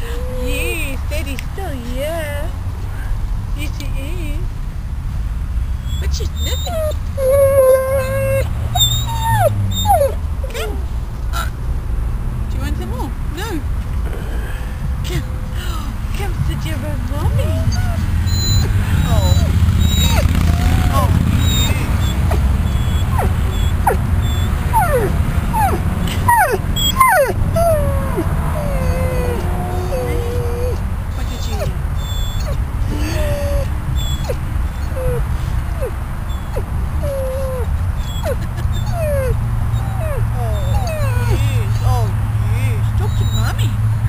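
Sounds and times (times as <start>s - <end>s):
steady low rumble: 0.0s - 41.8s
dog whining: 5.8s - 10.8s, 17.2s - 41.8s, 43.0s - 43.6s.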